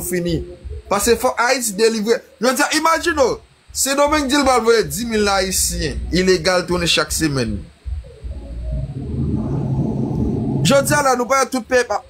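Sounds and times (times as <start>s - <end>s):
man speaking: 0.0s - 7.7s, 10.6s - 12.0s
low rumbling background noise: 0.0s - 12.0s.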